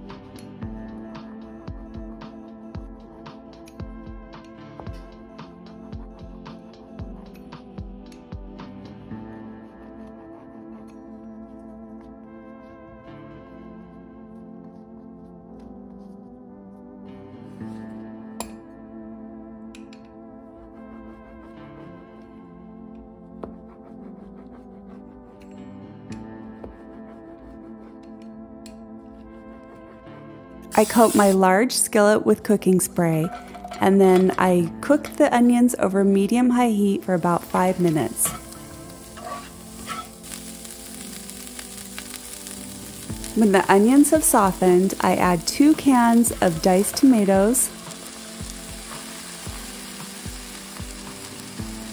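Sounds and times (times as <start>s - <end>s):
onions sizzling in a skillet: 30.7s - 31.4s, 37.2s - 51.9s
spatula scraping skillet: 30.8s - 31.5s, 33.0s - 34.6s, 37.2s - 50.5s.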